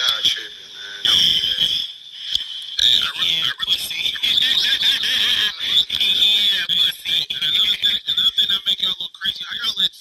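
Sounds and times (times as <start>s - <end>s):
steady high whine: 0.0s - 10.0s.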